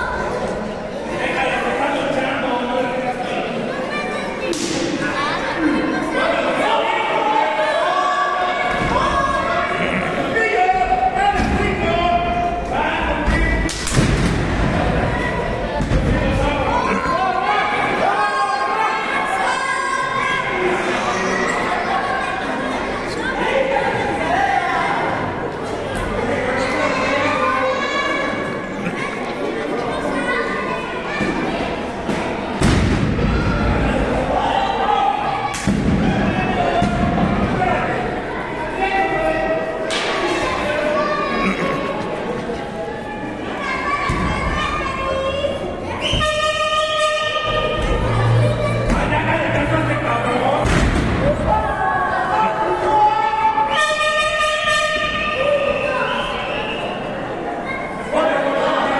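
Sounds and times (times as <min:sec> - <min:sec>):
voices shouting in a hall: 0:00.0 - 0:58.9.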